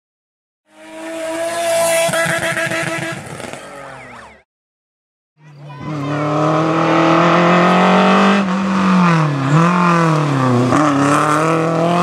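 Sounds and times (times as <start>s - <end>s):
racing car engine: 0.7s - 4.4s, 5.5s - 12.0s.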